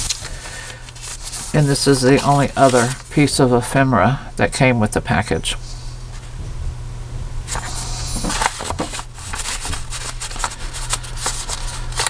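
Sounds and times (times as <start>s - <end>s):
paper rustling and scraping: 0.0s - 3.4s, 7.5s - 12.0s.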